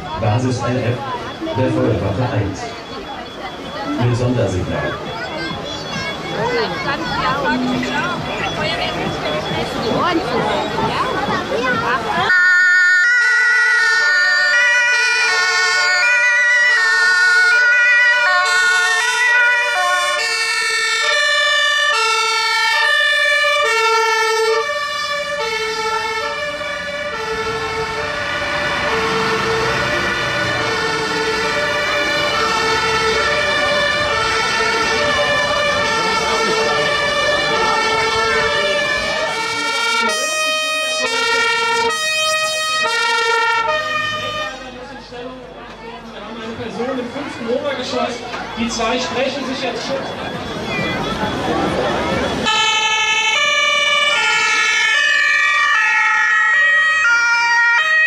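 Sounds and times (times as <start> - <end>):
diesel truck engine rumble: 0.0 - 58.0
two-tone sirens: 0.0 - 58.0.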